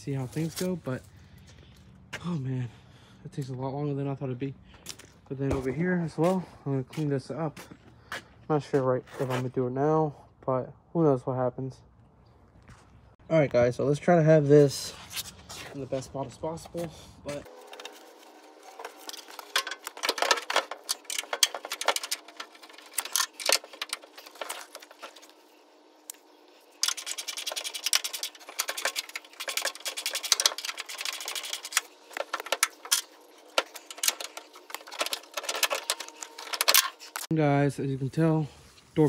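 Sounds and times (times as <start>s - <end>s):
metallic clicking and rattling: 18.8s - 25.2s, 26.8s - 37.3s.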